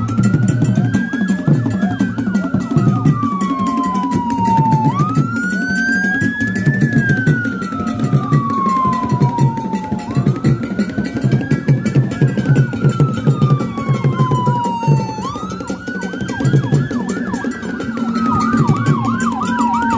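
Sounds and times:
siren wailing: 0:00.0 - 0:19.9.

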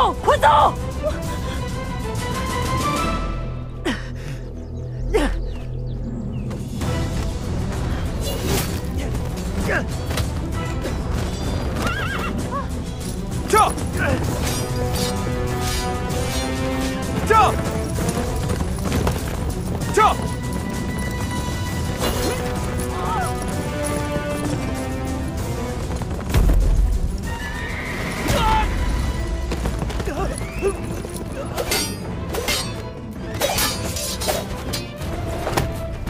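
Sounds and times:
background music: 0:00.0 - 0:36.0
horse whinnying: 0:11.7 - 0:12.7, 0:27.3 - 0:28.8.

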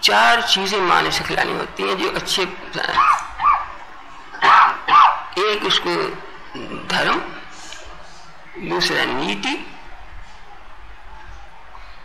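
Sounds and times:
dog barking in high yips: 0:03.0 - 0:03.7, 0:04.4 - 0:05.3.

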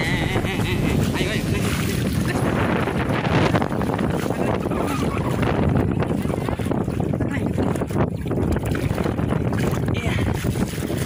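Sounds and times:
small boat under way: 0:00.0 - 0:11.0
water rushing past: 0:00.0 - 0:11.0
wind buffeting microphone: 0:00.0 - 0:11.0.

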